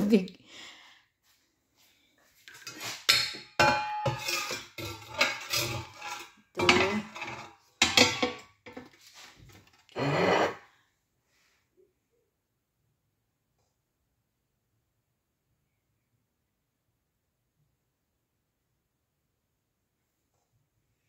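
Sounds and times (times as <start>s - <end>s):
kitchenware clanking: 2.5s - 9.8s.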